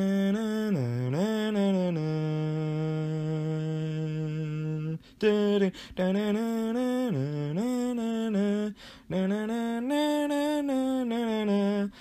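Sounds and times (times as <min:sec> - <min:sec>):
man humming a wordless tune: 0:00.0 - 0:12.0.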